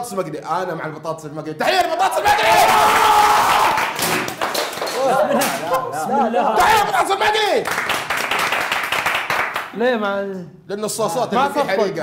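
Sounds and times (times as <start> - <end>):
excited voices: 1.6 - 3.9, 5.0 - 7.7
group clapping: 1.7 - 6.0, 6.6 - 9.8.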